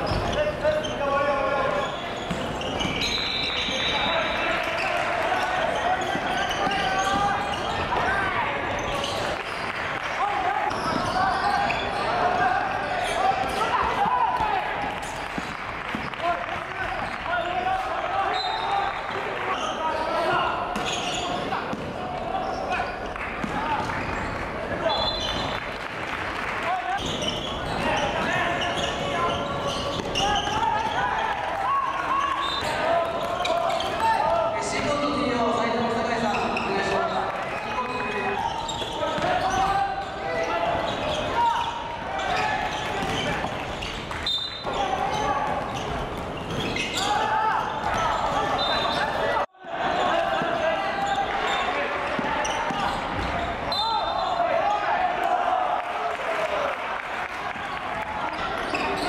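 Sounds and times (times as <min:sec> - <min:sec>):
players calling out: 0:00.0 - 0:25.6, 0:26.6 - 0:59.0.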